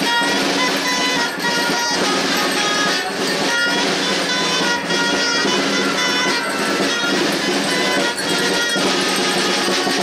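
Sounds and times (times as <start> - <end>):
live folk dance music: 0.0 - 10.0
sharp percussion hits: 0.0 - 10.0.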